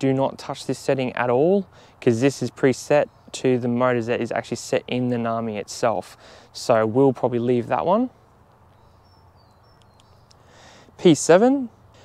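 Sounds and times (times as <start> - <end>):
faint high bird chirps: 8.1 - 10.7.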